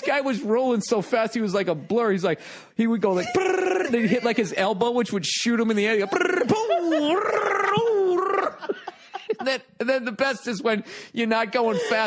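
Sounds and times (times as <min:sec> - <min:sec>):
man making gravelly vocal effect: 0:03.2 - 0:04.3, 0:06.0 - 0:08.7.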